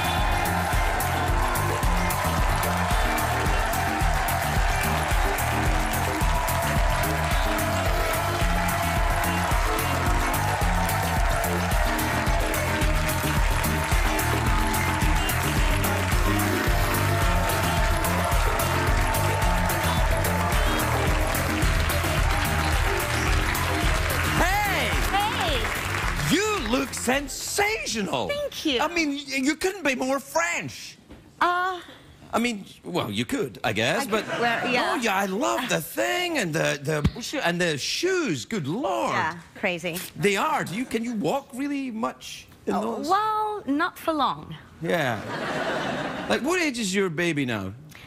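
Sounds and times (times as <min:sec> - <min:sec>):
upbeat music with thumping beat: 0:00.0 - 0:27.3
studio audience applauding: 0:00.0 - 0:28.8.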